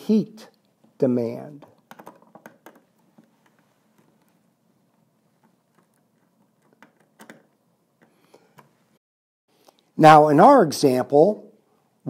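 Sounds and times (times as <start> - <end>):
wire terminals clicking: 5.3 - 8.8.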